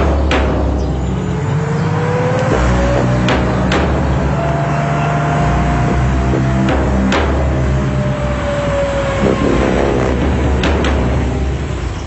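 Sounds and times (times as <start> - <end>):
motorcycle engines running: 0.0 - 12.0
background music: 2.0 - 12.0.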